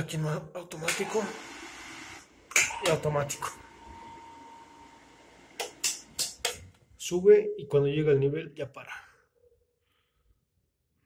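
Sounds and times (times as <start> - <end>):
water pump motor humming: 0.7 - 6.6.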